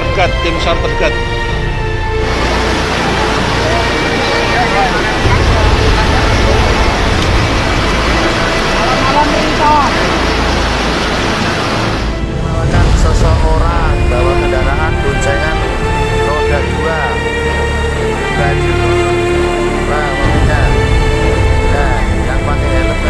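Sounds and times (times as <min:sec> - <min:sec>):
floodwater rushing: 0:00.0 - 0:23.0
music with long held tones: 0:00.0 - 0:23.0.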